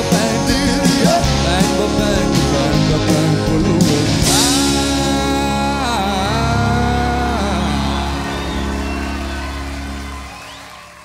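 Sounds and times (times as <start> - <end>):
live band chord held: 0.0 - 11.0.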